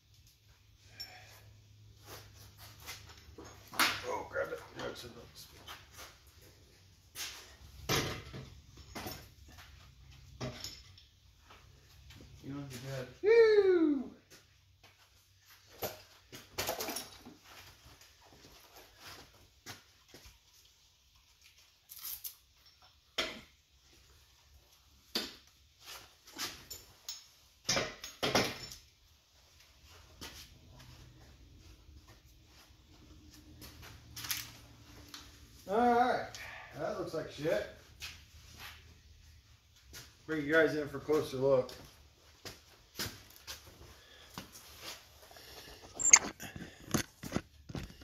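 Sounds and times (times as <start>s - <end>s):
metal clinks of engine parts: 10.3s - 11.1s.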